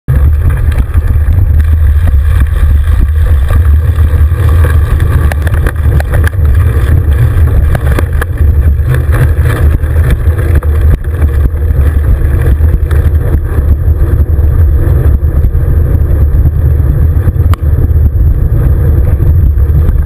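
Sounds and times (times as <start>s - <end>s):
bicycle clicks and rattles: 0.1s - 20.0s
wind buffeting microphone: 0.1s - 20.0s.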